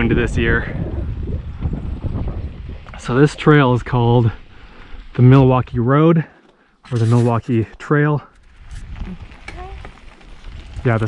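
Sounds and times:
bicycle tyres rumbling on gravel: 0.0s - 6.0s, 6.9s - 11.0s
bike clicks and rattles: 8.3s - 11.0s.

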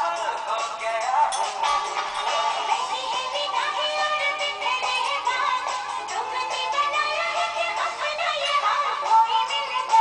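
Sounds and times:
film song with sung melody: 0.0s - 10.0s.

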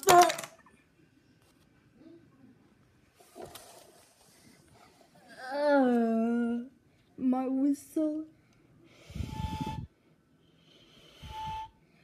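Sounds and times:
breathy mouth whistle: 9.0s - 10.0s, 10.8s - 12.0s.

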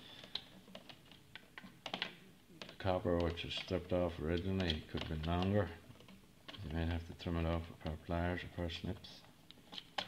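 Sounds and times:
light clicks and taps: 0.2s - 10.0s.

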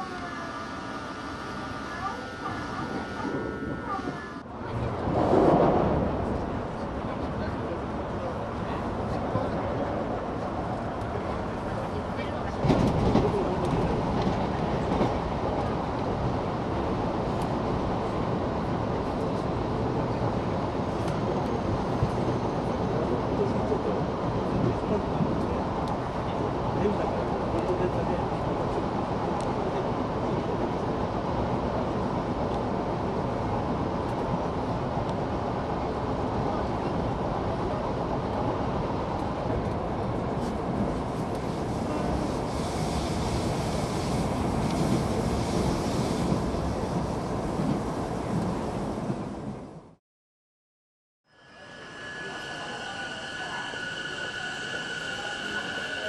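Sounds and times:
train wheels rumbling on rail: 0.0s - 49.9s, 51.6s - 56.0s.

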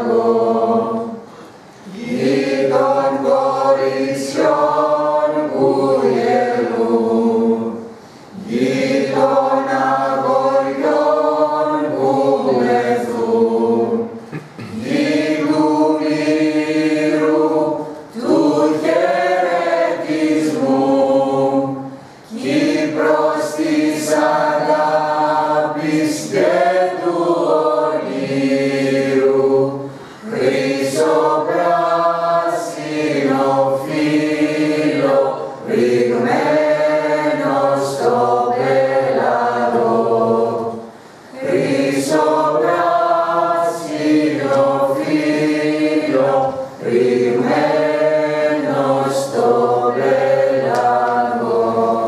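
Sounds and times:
mixed choir singing unaccompanied: 0.0s - 52.0s.

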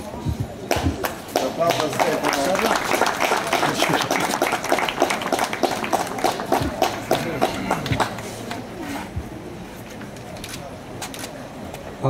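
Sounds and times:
audience applauding: 0.7s - 8.4s.

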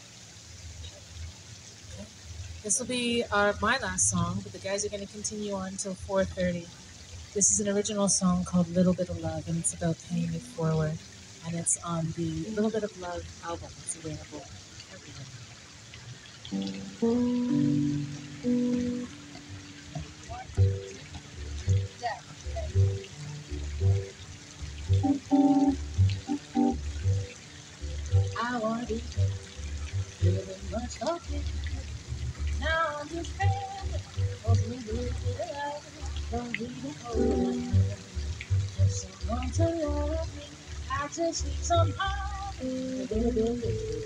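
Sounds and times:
woman singing: 2.7s - 6.7s, 7.4s - 14.4s, 16.9s - 19.0s, 28.4s - 29.2s, 30.2s - 31.8s, 32.6s - 38.1s, 38.8s - 44.0s
upright bass plucked: 3.3s - 4.6s, 16.5s - 35.4s, 36.0s - 44.0s
electric guitar playing: 16.5s - 28.4s.

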